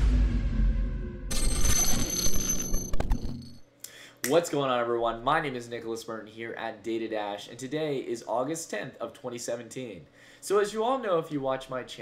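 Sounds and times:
deep bass boom: 0.0s - 1.3s
high ringing electronic chime: 1.3s - 3.6s.

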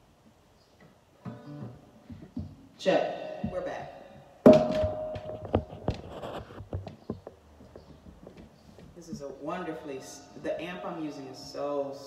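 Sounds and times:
hands tapping on guitar and device: 0.8s - 2.7s, 4.5s - 9.4s
guitar note ringing: 1.2s - 2.3s, 4.4s - 5.7s.

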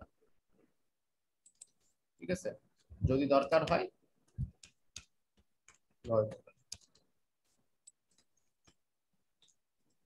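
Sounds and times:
computer keyboard typing: 4.4s - 7.1s.

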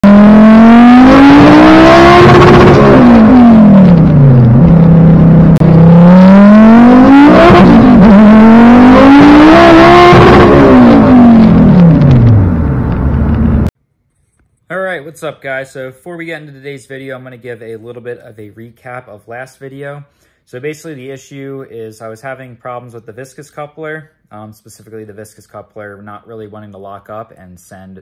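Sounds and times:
car engine revving: 0.0s - 13.7s.

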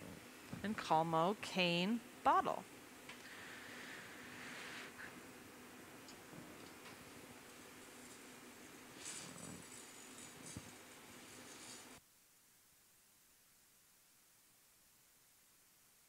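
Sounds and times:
hiss: 3.2s - 5.1s.

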